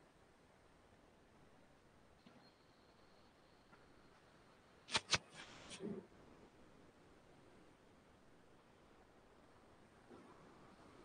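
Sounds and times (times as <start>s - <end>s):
sharp click: 4.9s - 5.5s.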